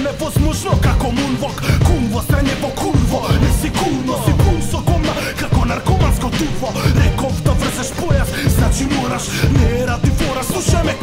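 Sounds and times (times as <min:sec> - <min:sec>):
hip hop beat with heavy kicks: 0:00.0 - 0:11.0
man rapping: 0:00.0 - 0:11.0.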